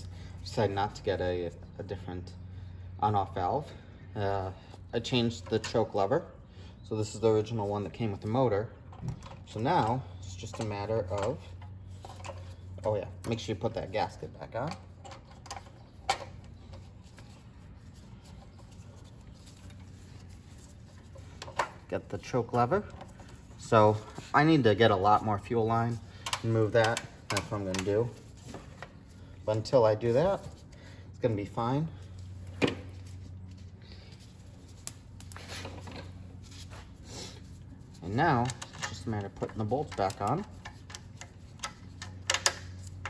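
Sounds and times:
low steady hum: 0:00.0 - 0:43.0.

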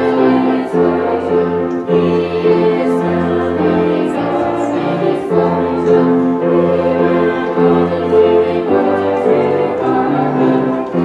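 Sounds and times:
youth choir singing: 0:00.0 - 0:11.0.

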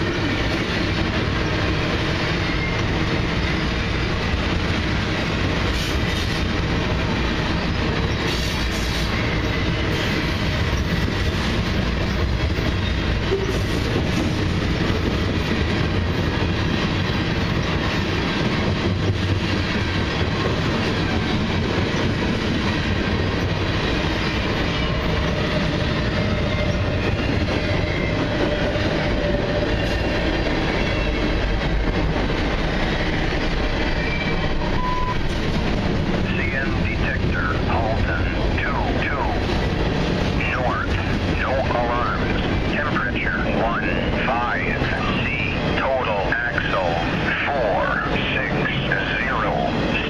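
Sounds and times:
train wheels rumbling on rail: 0:00.0 - 0:50.0
short tone: 0:34.8 - 0:35.2
automated voice readout: 0:36.3 - 0:39.4, 0:40.4 - 0:50.0.

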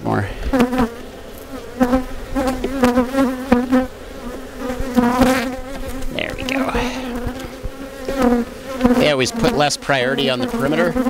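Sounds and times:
bees buzzing: 0:00.4 - 0:11.0.

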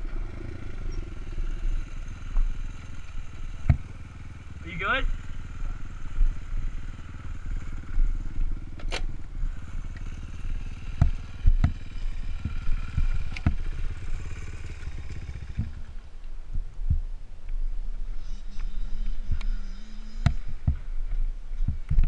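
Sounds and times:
dirt bike engine idling: 0:00.0 - 0:22.0.

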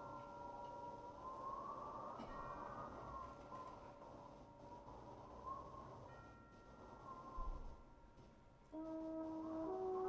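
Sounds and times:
brass band playing softly: 0:08.8 - 0:10.0.

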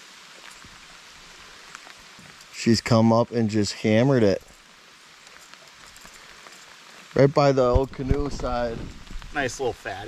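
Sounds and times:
light rain on water: 0:00.0 - 0:10.0.

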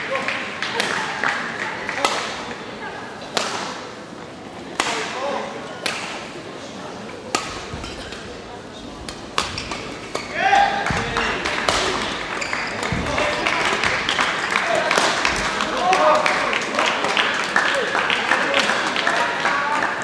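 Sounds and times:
rackets striking shuttlecock: 0:07.3 - 0:08.4, 0:09.0 - 0:15.6.

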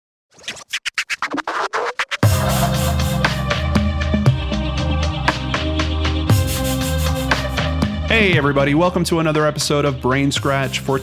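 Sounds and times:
record scratches: 0:00.3 - 0:02.5
intro music: 0:00.9 - 0:11.0.

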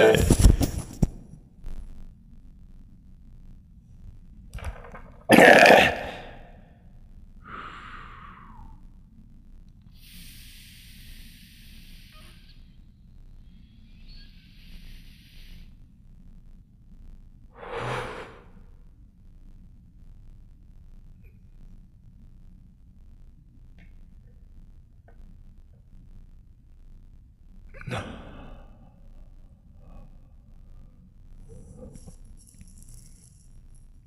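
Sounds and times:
person exhaling hard: 0:07.4 - 0:08.8, 0:17.6 - 0:18.6
hissing vape inhalations: 0:09.9 - 0:12.8, 0:13.4 - 0:15.8, 0:17.6 - 0:18.6.

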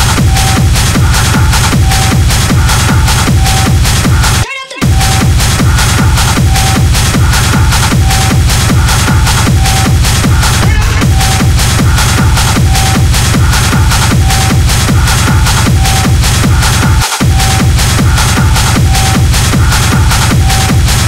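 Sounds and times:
techno dj mix: 0:00.0 - 0:21.0.

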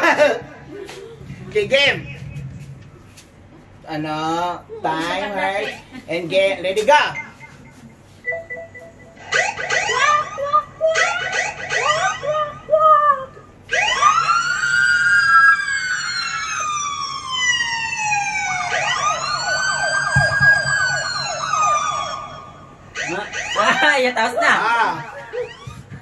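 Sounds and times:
siren-like wailing: 0:08.3 - 0:12.6, 0:13.7 - 0:24.0, 0:24.6 - 0:25.9.

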